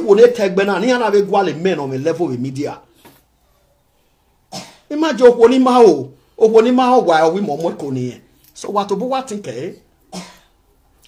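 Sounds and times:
short cough: 4.5 - 4.9, 10.1 - 10.5.

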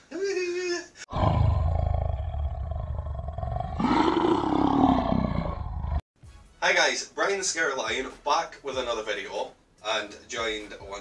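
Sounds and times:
lion roaring: 1.1 - 6.0.

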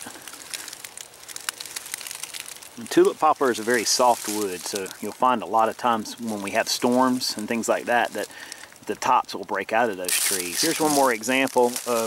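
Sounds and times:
dry leaves crackling: 0.0 - 12.0.

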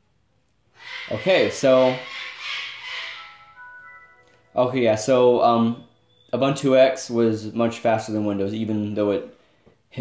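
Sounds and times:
computer startup chime: 2.8 - 6.4.

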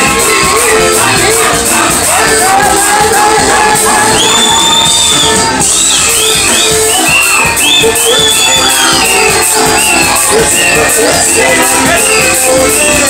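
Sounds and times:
electric guitar bending melody: 0.0 - 13.0.

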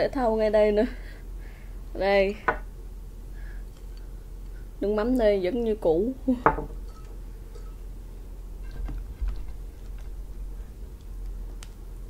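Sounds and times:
metal spoon clinking ceramic bowl: 6.5 - 7.8.

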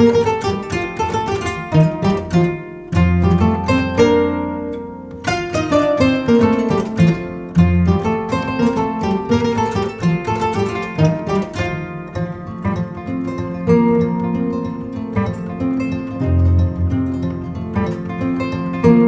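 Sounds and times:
koras playing a duet: 0.0 - 19.0.

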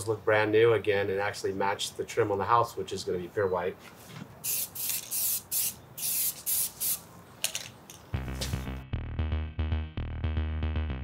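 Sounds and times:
aerosol can spraying: 4.4 - 7.0.

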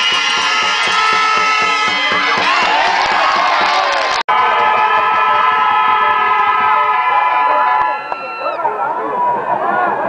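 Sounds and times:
horns blaring together: 0.0 - 8.5.

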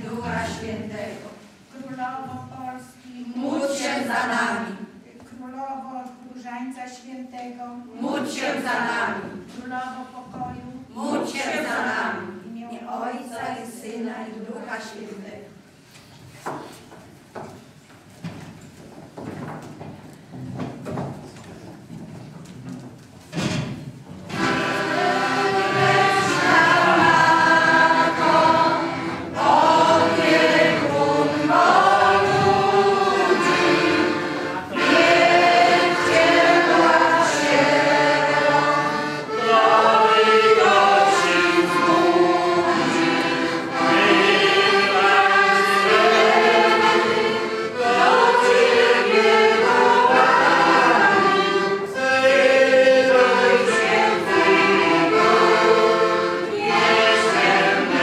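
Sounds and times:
group singing religious song: 0.0 - 1.7, 3.2 - 5.0, 7.9 - 9.5, 10.8 - 15.2, 24.3 - 58.0.

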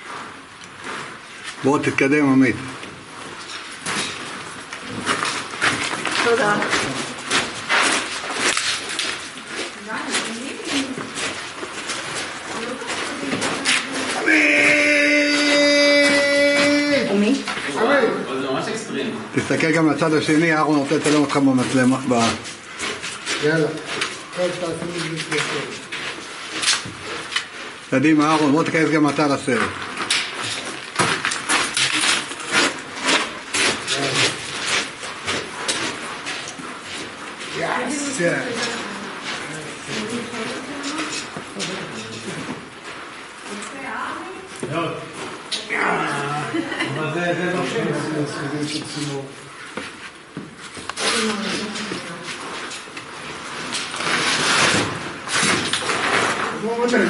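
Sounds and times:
boots scraping on rock and rungs: 3.3 - 16.9, 20.3 - 41.6
voices: 12.6 - 19.2, 45.5 - 49.4
short low calls: 14.2 - 17.2.

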